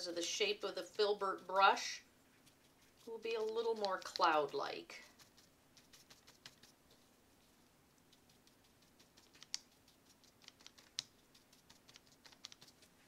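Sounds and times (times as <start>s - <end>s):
brush tapping on paper: 2.4s - 7.0s, 8.0s - 13.0s.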